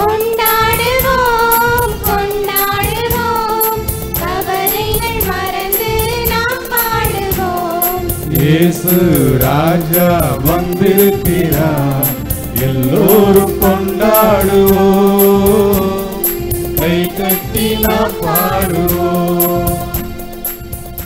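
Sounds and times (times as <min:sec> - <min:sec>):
choir singing a hymn: 0:00.0 - 0:20.4
amplified accompaniment with beat: 0:00.0 - 0:21.0
low male voice singing: 0:08.3 - 0:16.2, 0:16.8 - 0:20.0.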